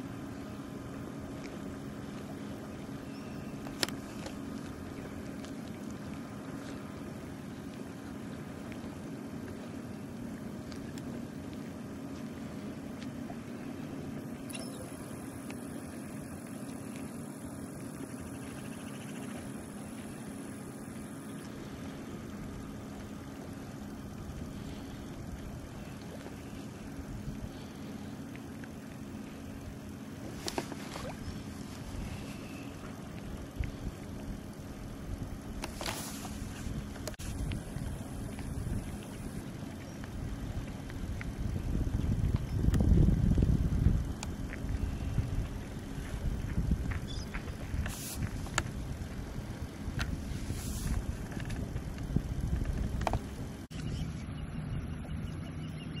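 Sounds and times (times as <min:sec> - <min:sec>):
low mechanical hum: 0:00.0 - 0:56.0.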